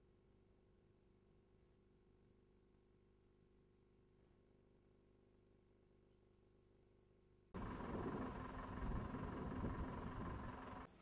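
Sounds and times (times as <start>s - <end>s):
faint steady hum: 0.0s - 11.0s
wind buffeting microphone: 7.6s - 10.8s.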